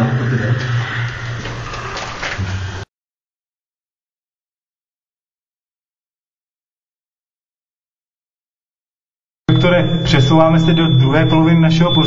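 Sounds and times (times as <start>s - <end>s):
low mechanical hum: 0.0s - 2.9s.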